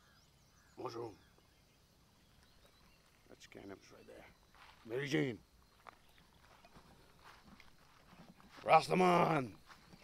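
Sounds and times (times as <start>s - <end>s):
dog paws stepping on grass: 4.5s - 10.0s.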